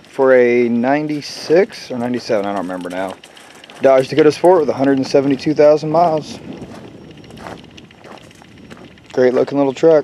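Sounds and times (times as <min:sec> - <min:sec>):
faint footsteps: 0:00.0 - 0:10.0.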